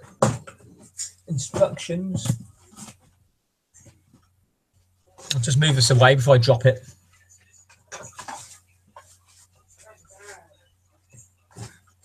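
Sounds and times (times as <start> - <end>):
faint voice off-microphone: 9.8 - 10.6.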